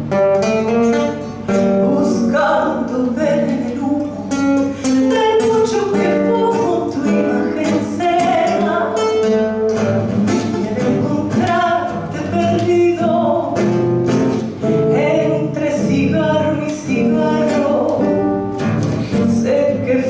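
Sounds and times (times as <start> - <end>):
classical guitar chords: 0.0 - 20.0
woman singing into microphone: 1.5 - 9.6, 10.3 - 13.8, 14.6 - 20.0.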